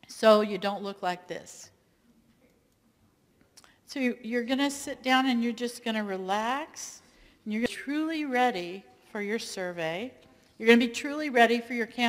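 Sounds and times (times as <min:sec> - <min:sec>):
woman talking: 0:03.9 - 0:12.0
faint breath: 0:07.1 - 0:07.5.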